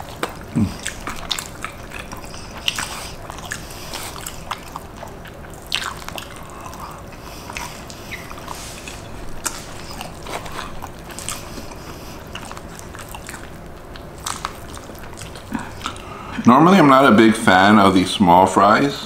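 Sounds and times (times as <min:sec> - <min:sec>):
chewing and mouth smacks: 0:00.0 - 0:16.5.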